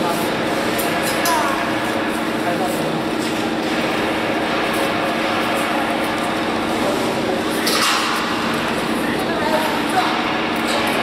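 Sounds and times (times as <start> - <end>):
mechanical hum: 0.0 - 11.0.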